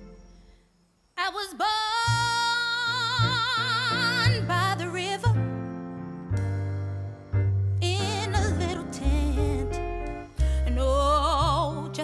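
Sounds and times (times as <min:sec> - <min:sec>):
soft instrumental accompaniment: 0:00.0 - 0:00.8, 0:02.1 - 0:12.0
woman singing with vibrato: 0:01.2 - 0:05.4, 0:07.8 - 0:10.0, 0:10.6 - 0:12.0
low bass notes: 0:05.3 - 0:11.8.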